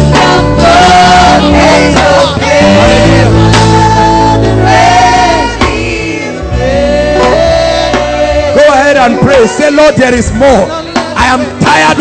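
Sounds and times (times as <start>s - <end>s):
gospel singing: 0.0s - 12.0s
sustained instrumental accompaniment: 0.0s - 12.0s.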